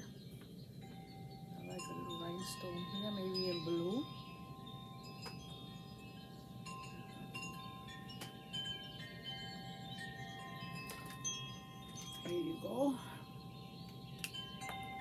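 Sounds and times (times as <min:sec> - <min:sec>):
wind chimes ringing: 0:00.0 - 0:15.0.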